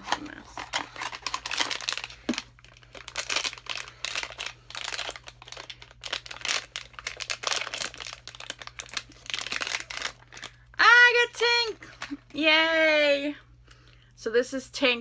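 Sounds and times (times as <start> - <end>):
packaging crinkling and tearing: 0.0 - 10.7.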